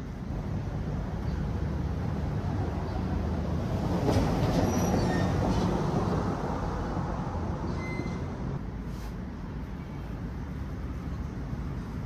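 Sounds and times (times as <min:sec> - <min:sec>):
low traffic rumble: 0:00.0 - 0:12.0
faint brief squeals: 0:07.7 - 0:08.4.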